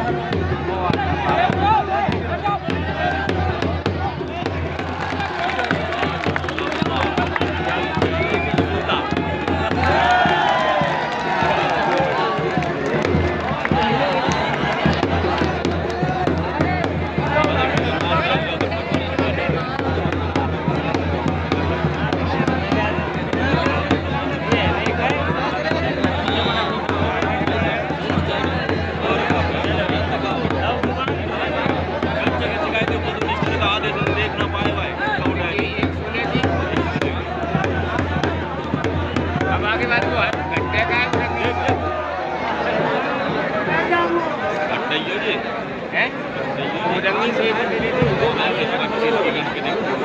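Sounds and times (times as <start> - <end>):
drum beaten with a stick: 0.0 - 42.2, 47.8 - 48.8
crowd shouting and chattering: 0.0 - 50.0.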